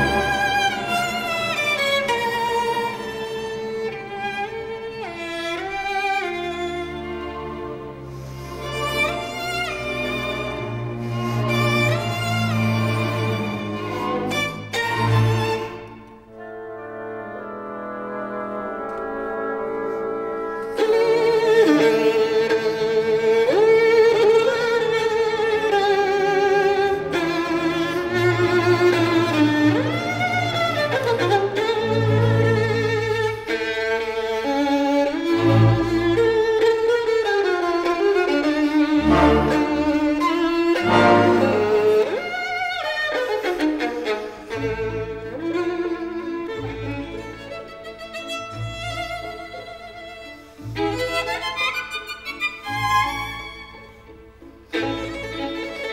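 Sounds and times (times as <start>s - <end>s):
solo violin melody: 0.0s - 55.9s.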